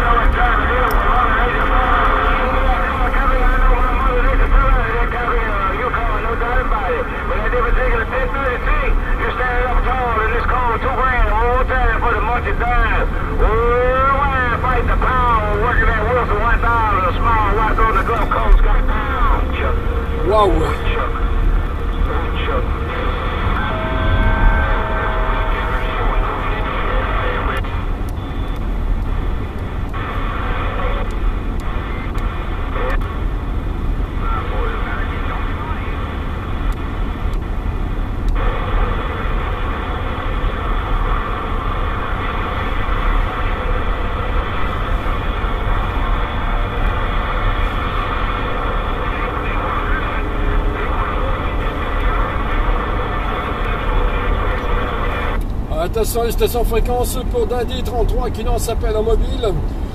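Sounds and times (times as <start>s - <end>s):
garbled distant radio voices: 0.0s - 33.2s, 38.3s - 59.7s
low car road rumble: 0.0s - 59.9s
radio hiss and static: 0.0s - 59.9s.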